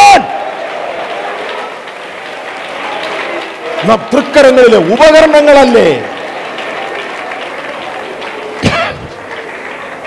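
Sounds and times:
crowd applauding: 0.0s - 10.0s.

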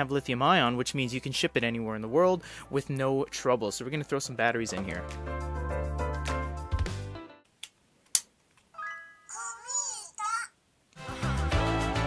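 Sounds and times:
background music: 0.0s - 7.5s, 11.0s - 12.0s.

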